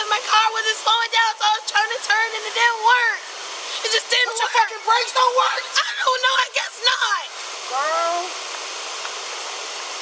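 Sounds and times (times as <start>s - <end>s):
woman's voice: 0.0s - 8.4s
steady outdoor hiss: 0.0s - 10.0s.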